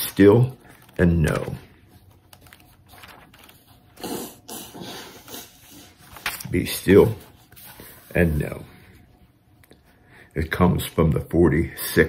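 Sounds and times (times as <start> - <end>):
light rustling of handling: 0.6 - 3.8.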